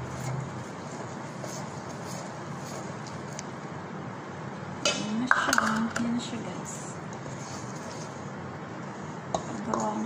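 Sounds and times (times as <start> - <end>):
spoon stirring in metal bowl: 0.0 - 3.5, 9.3 - 10.0.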